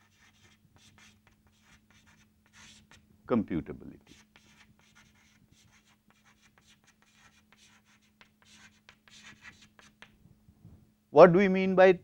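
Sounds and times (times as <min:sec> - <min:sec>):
chalk scratching on chalkboard: 0:00.0 - 0:03.0, 0:04.0 - 0:10.1.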